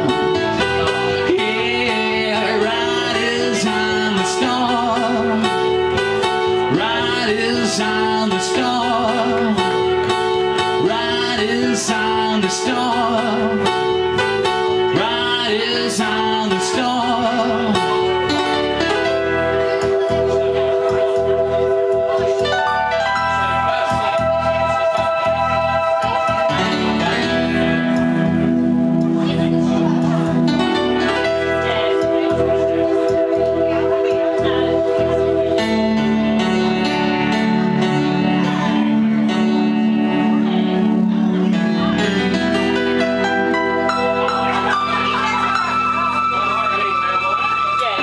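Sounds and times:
audience chattering: 0:00.0 - 0:48.0
organ chords on keyboard: 0:00.0 - 0:48.0
pulsing bass line: 0:00.0 - 0:48.0.

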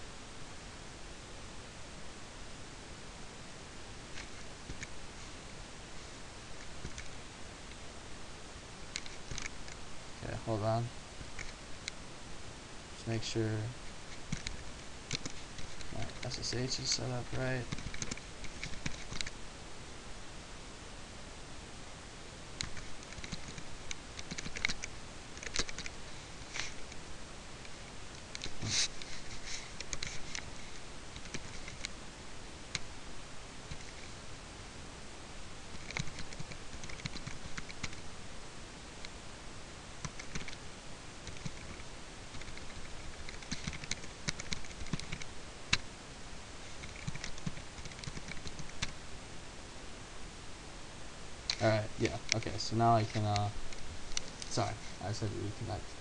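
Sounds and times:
computer keyboard typing: 0:17.4 - 0:19.3, 0:22.6 - 0:26.0, 0:31.1 - 0:31.9, 0:35.7 - 0:38.0, 0:40.0 - 0:40.6, 0:41.2 - 0:45.8, 0:46.8 - 0:49.0.

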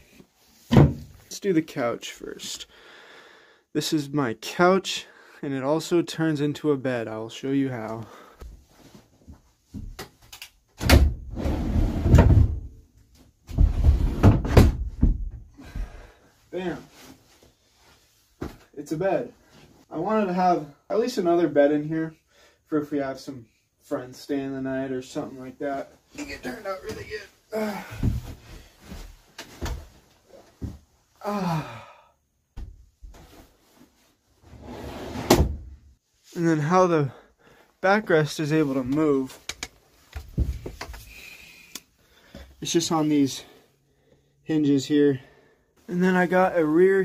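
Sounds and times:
wood knocking and scraping: 0:39.4 - 0:41.1.

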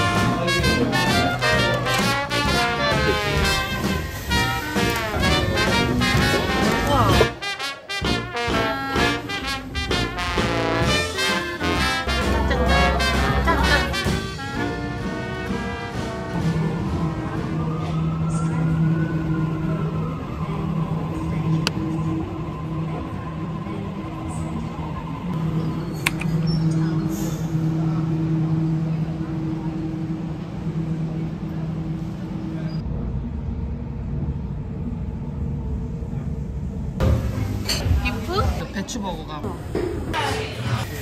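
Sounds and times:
train traction motors whining: 0:00.0 - 0:07.4, 0:08.1 - 0:39.0.

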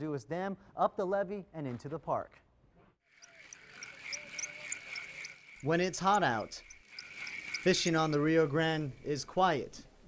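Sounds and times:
high animal drone: 0:03.2 - 0:09.2
high animal chirps: 0:03.2 - 0:09.3.

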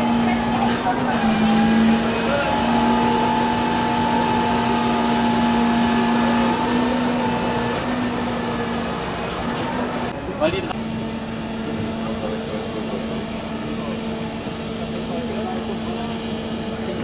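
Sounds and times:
engine running steadily: 0:00.0 - 0:17.0.

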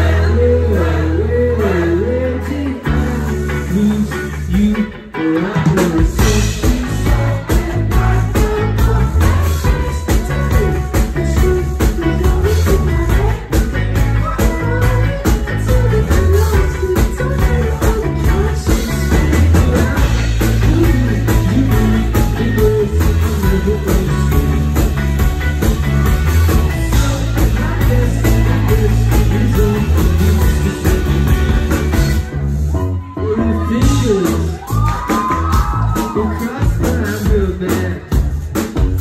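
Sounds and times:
bass: 0:00.0 - 0:39.0
drums: 0:00.0 - 0:39.0
electric guitar: 0:00.0 - 0:39.0.

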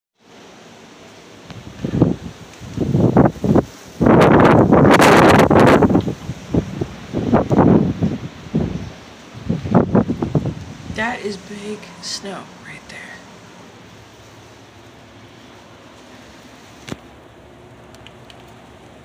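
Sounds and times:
wind buffeting microphone: 0:01.4 - 0:11.4.

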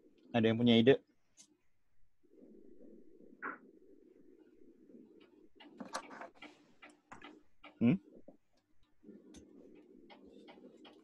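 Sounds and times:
man saying hmm: 0:07.8 - 0:08.0.

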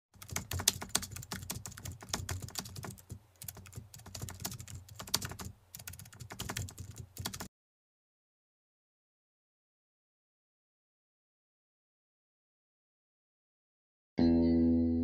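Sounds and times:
rapid keyboard key clicks: 0:00.2 - 0:07.5.

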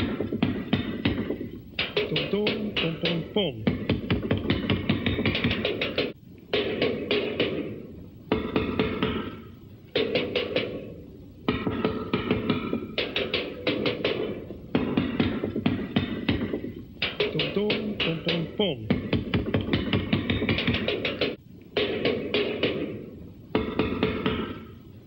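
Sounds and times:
drum kit rapid strokes: 0:00.0 - 0:24.8.

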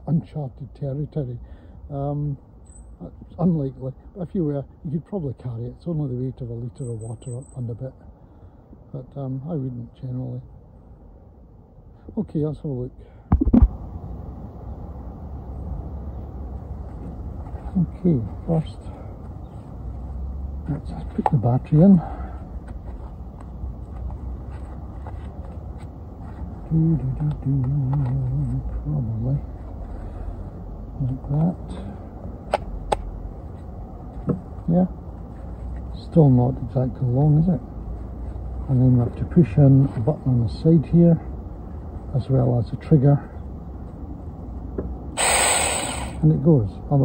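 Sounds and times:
man humming: 0:26.7 - 0:28.7
electric chainsaw whining: 0:45.2 - 0:46.2.

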